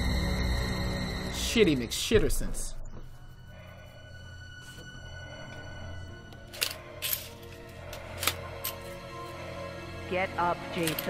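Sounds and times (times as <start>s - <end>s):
dark low music: 0.0s - 11.0s.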